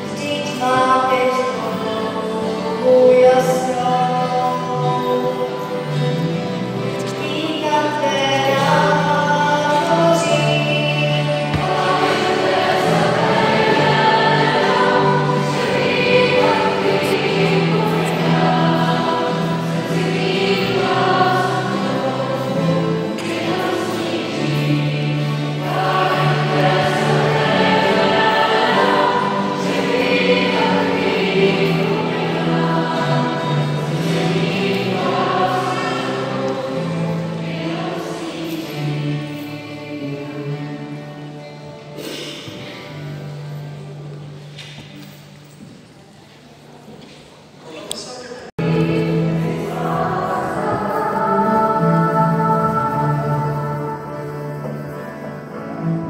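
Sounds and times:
choir singing sacred music: 0.0s - 56.0s.

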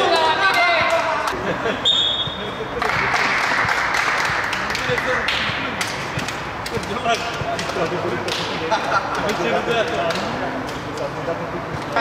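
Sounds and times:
voice echoing in a sports hall: 0.0s - 10.5s
high-pitched whistle tone: 1.8s - 2.5s.

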